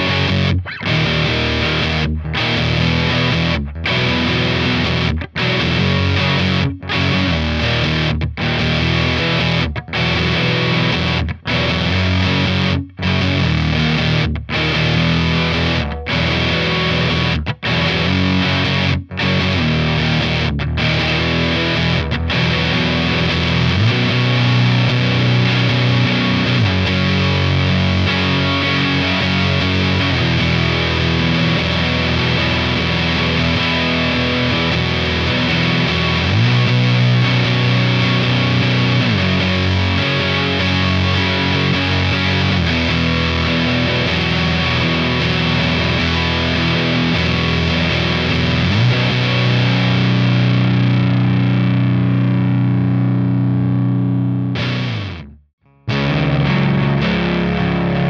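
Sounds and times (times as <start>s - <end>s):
distorted electric guitar riff: 0.0s - 58.0s.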